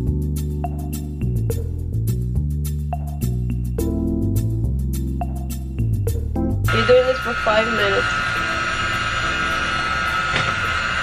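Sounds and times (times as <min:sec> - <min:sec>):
electric hand mixer whipping: 0:06.7 - 0:11.0.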